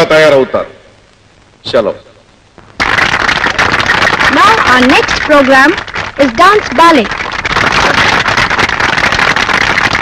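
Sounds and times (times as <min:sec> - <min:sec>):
audience applauding: 0:02.8 - 0:10.0.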